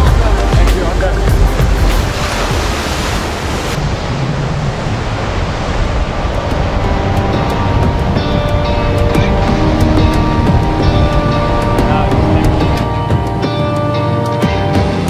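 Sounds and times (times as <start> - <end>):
background music: 0.0 - 3.7, 6.3 - 15.0
surf breaking on beach: 0.0 - 13.0.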